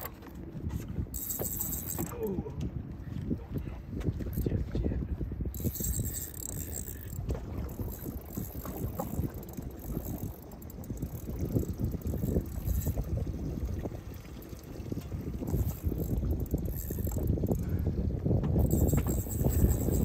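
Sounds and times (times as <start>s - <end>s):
water lapping against boat hull: 0.0s - 20.0s
wind buffeting microphone: 0.0s - 20.0s.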